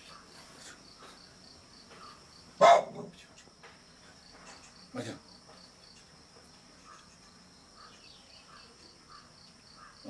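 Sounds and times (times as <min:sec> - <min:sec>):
cricket chirping: 0:00.0 - 0:10.0.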